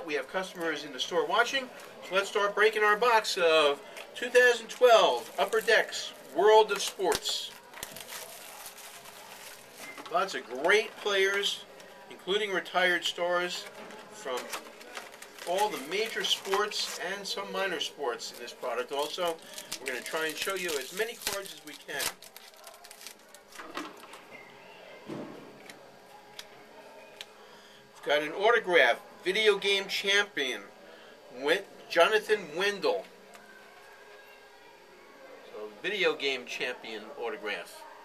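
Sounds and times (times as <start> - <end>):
foil card pack rustling: 3.9 - 11.9, 13.5 - 24.1
cards being handled: 13.6 - 17.2, 18.3 - 24.1.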